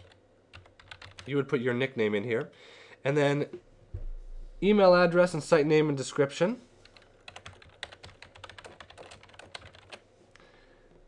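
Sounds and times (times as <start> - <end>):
computer keyboard typing: 0.0 - 1.4, 6.8 - 10.0.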